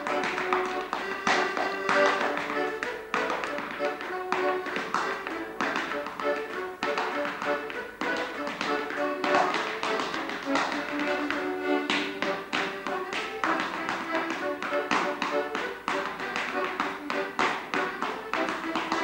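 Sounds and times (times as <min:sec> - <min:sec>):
hard shoes tapping and stamping: 0:00.0 - 0:19.0
piano accordion dance tune: 0:00.0 - 0:19.0.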